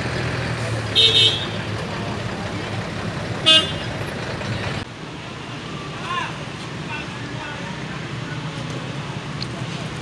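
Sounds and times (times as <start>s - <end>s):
bus engine idling: 0.0s - 10.0s
traffic noise: 0.0s - 10.0s
vehicle horn toot: 1.0s - 1.6s, 3.4s - 3.9s.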